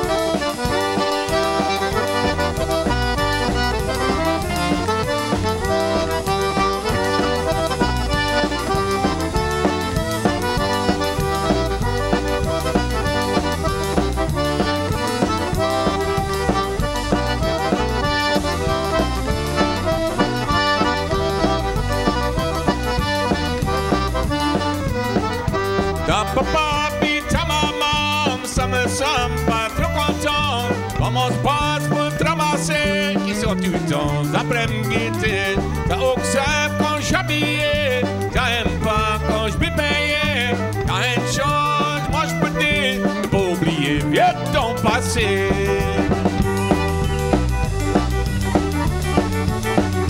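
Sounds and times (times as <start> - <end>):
accordion melody: 0.0 - 50.0
drum kit beat: 0.0 - 50.0
fiddle: 0.0 - 50.0.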